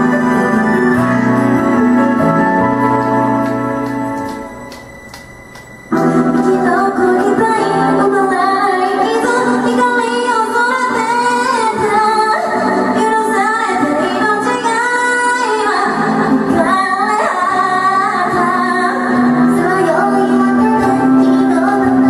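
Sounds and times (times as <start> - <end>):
backing track music: 0.0 - 22.0
woman singing into microphone: 6.0 - 22.0.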